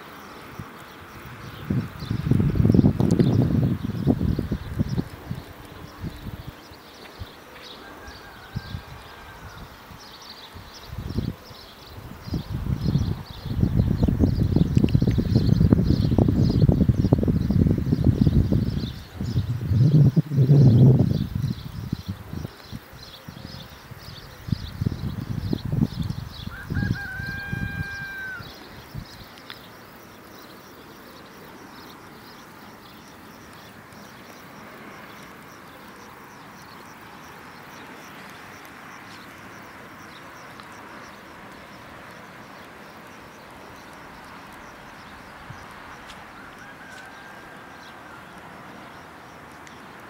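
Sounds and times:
wind rumbling on microphone: 0.0 - 30.7, 43.4 - 49.8
drawn-out steady-pitched call: 0.0 - 50.0.

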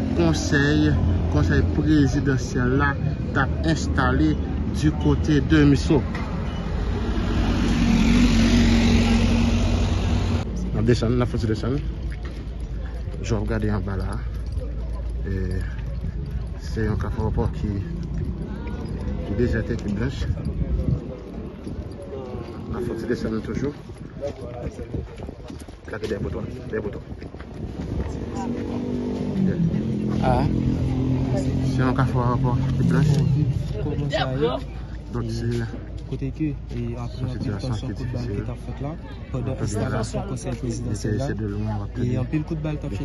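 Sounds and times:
vehicle engine hum: 0.0 - 24.1, 27.2 - 38.0
road noise: 0.0 - 43.0.

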